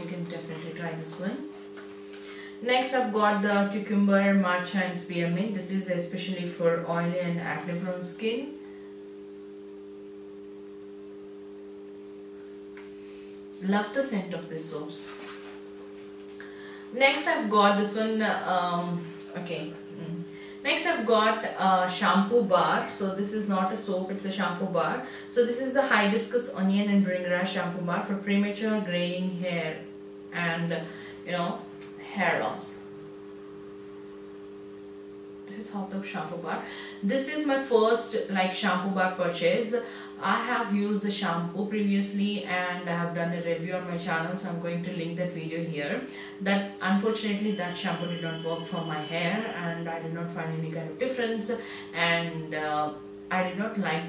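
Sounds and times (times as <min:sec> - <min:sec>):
steady low tonal hum: 0:00.0 - 0:54.0.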